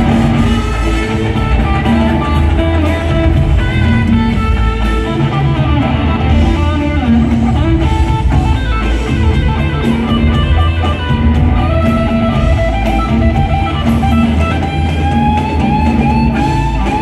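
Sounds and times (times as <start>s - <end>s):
electric lead guitar: 0.0s - 17.0s
live rock band: 0.0s - 17.0s.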